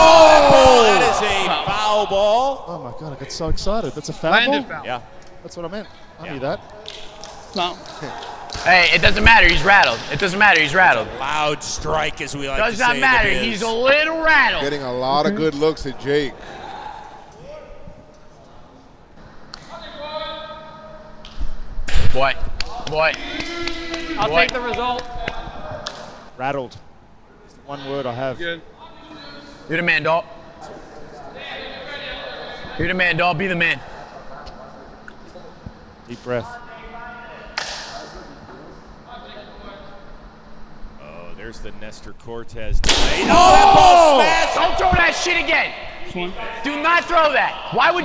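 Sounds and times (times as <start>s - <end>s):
players calling out: 0.0s - 2.9s, 43.0s - 48.0s
sharp smack: 37.6s - 38.1s, 42.8s - 43.4s.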